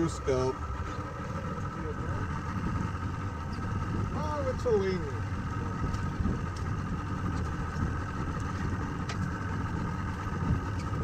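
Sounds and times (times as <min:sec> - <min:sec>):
outboard motor idling: 0:00.0 - 0:11.0.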